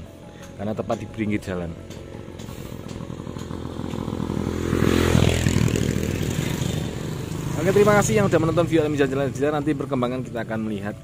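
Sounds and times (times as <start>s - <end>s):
motor scooter passing by: 1.8s - 10.4s.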